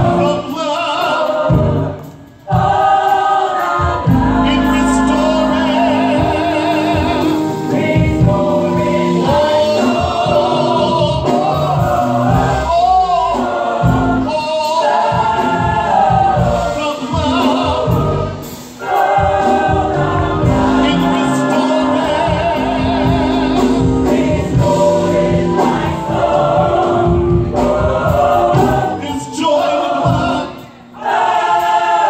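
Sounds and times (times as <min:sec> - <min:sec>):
gospel choir singing: 0:00.0 - 0:32.0
instrumental accompaniment: 0:00.0 - 0:32.0.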